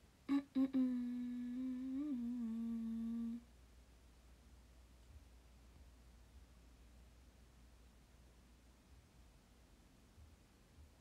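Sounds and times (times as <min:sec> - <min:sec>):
woman humming a held note: 0:00.3 - 0:03.4.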